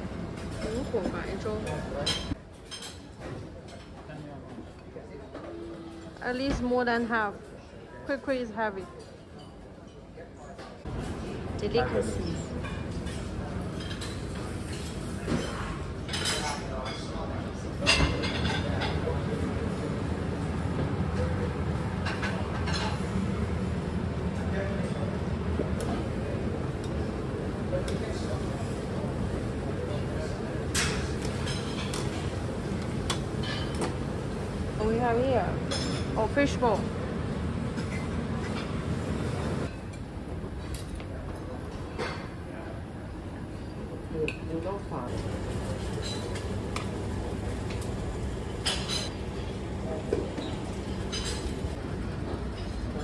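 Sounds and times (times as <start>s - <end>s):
dishes and cutlery clinking: 0.4s - 4.1s, 12.2s - 19.1s, 30.7s - 32.4s, 33.0s - 34.1s, 45.1s - 51.8s
restaurant low rumble: 10.8s - 53.0s.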